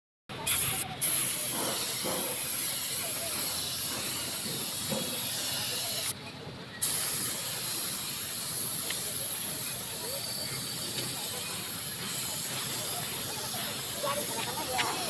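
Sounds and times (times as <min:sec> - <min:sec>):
paint spray gun hissing: 0:00.4 - 0:06.2, 0:06.8 - 0:15.0.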